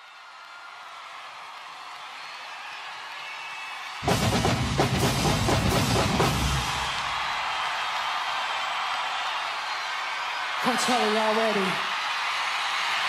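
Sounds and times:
marching band with drums and brass: 4.0s - 7.1s.

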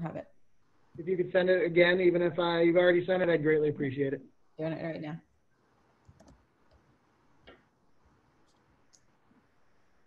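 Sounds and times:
faint computer clicks: 6.0s - 7.7s.

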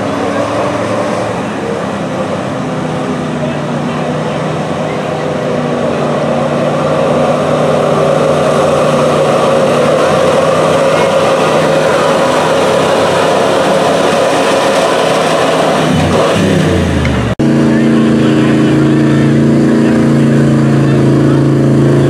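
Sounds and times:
truck engine at high revs: 0.0s - 22.0s.

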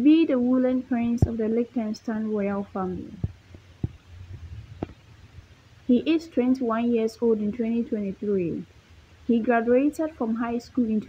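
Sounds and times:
faint low hum: 0.0s - 11.0s
soft low thumps: 1.0s - 1.6s, 2.8s - 5.6s.

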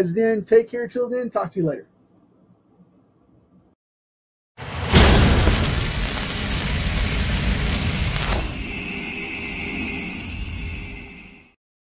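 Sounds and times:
rumbling crackling impact: 4.6s - 9.0s
low rumble: 4.6s - 11.3s
high ringing tone: 8.4s - 11.6s.

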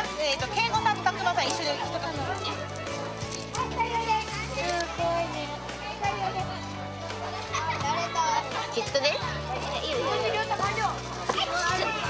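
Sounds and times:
background music: 0.0s - 12.0s
children chattering: 0.0s - 12.0s.

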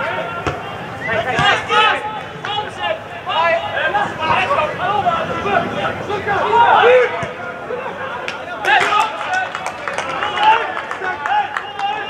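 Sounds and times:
footballers shouting: 0.0s - 12.0s.

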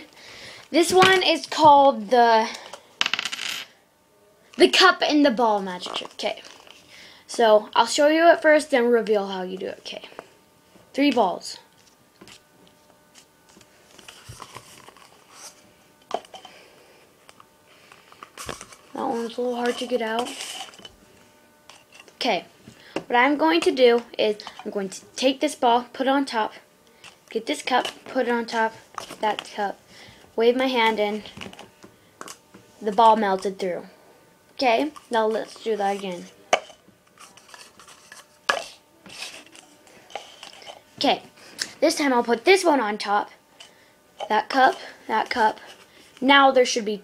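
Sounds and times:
disposable cups rustling and scraping: 5.6s - 6.9s, 13.1s - 25.0s, 27.0s - 33.5s, 34.8s - 41.8s, 43.6s - 46.2s.

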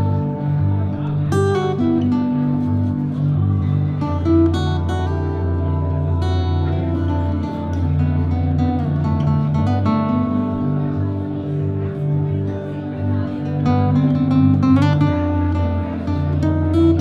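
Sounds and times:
solo guitar strummed and picked: 0.0s - 17.0s.

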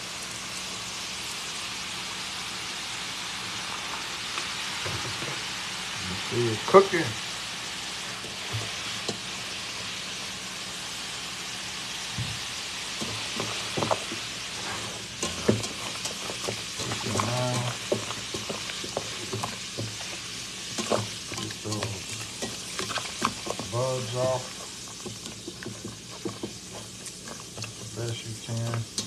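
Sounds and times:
liquid fizzing in a pot: 11.2s - 29.0s
vegetables knocking against a pot: 15.2s - 23.8s, 24.5s - 29.0s.

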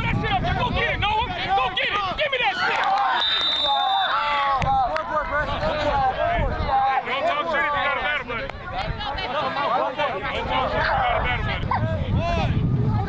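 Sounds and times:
overlapping voices calling out: 0.2s - 12.2s.

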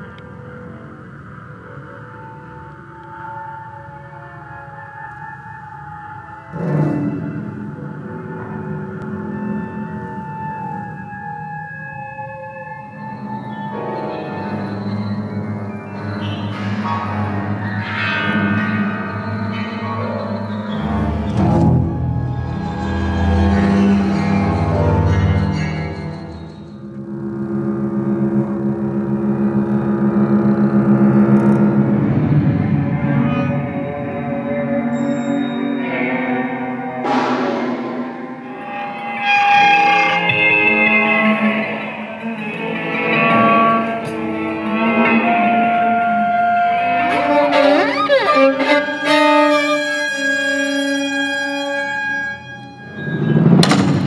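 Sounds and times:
chamber music violins and winds: 45.1s - 50.4s.

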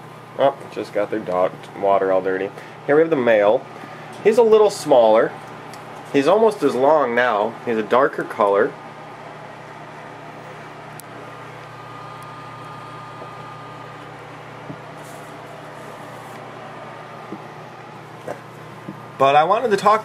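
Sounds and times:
background hum and hiss: 0.0s - 20.0s.

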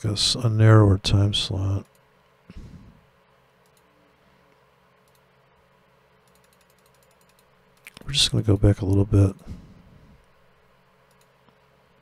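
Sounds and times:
computer mouse ticking: 1.8s - 2.1s, 3.6s - 3.9s, 5.0s - 5.3s, 6.2s - 9.0s, 11.0s - 11.6s.

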